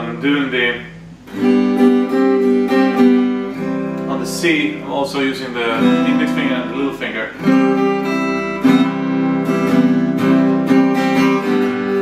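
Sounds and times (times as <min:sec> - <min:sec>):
acoustic guitar strummed chord: 0:00.0 - 0:12.0.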